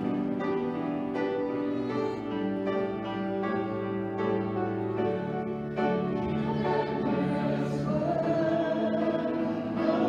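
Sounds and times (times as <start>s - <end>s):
piano accompaniment: 0.0s - 10.0s
choir singing: 5.8s - 10.0s.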